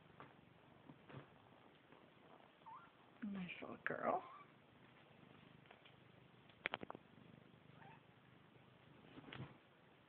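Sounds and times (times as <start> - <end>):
kittens purring: 0.0 - 10.0.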